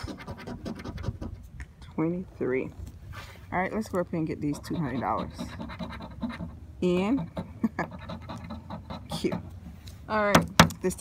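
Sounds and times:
coin scraping scratch card: 4.4s - 6.5s.

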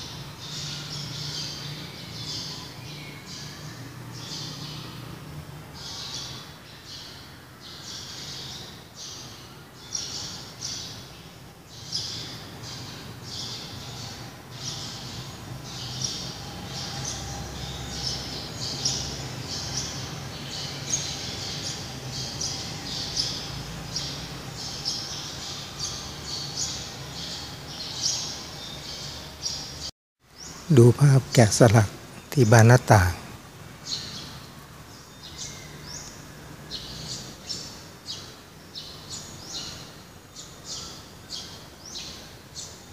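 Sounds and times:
small birds chirping: 0.0s - 42.9s.

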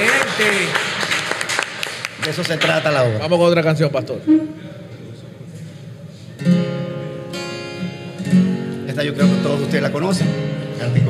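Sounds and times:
acoustic guitar strumming: 4.2s - 4.8s, 6.4s - 11.0s.

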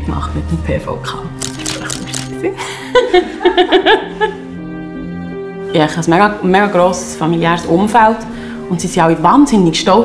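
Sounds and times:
background music: 0.0s - 10.0s
woman laughing: 2.2s - 4.5s.

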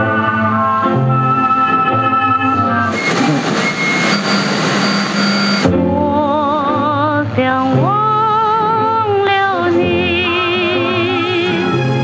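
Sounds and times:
loud steady rushing noise: 2.9s - 5.7s.

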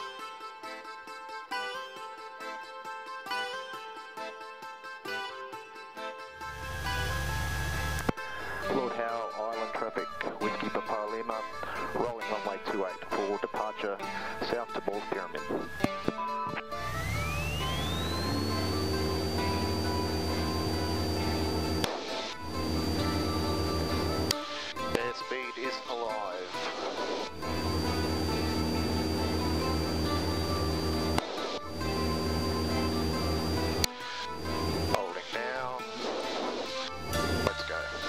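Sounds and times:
light aircraft engine drone: 6.4s - 8.1s, 16.8s - 24.4s, 27.3s - 35.0s, 37.0s - 37.6s.

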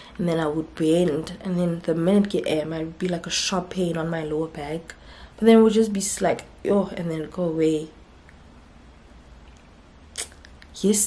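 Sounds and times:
woman speaking: 0.0s - 8.0s, 10.7s - 11.0s
faint low hum: 0.0s - 11.0s.

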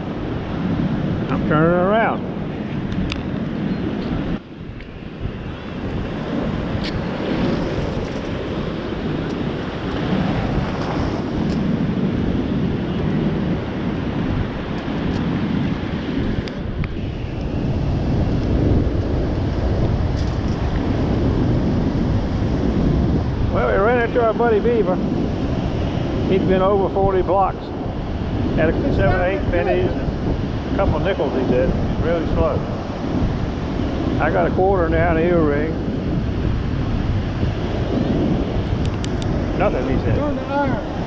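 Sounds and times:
ocean surf breaking: 0.0s - 41.0s
wind buffeting microphone: 0.0s - 41.0s.

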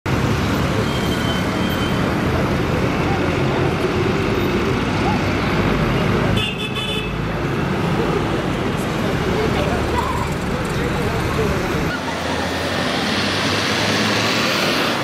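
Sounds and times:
heavy road traffic: 0.0s - 15.0s
vehicle horns: 6.3s - 7.2s.

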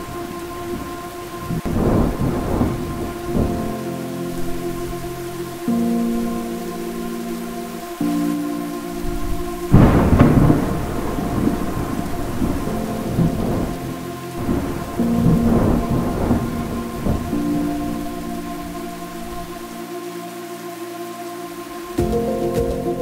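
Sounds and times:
thunder rumbling: 0.0s - 19.8s
soft sustained music tones: 0.0s - 23.0s
steady rain: 0.0s - 23.0s.

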